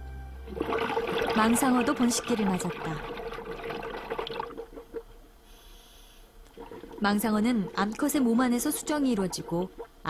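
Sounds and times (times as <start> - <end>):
water bubbling and gurgling: 0.5 - 5.4, 6.5 - 10.0.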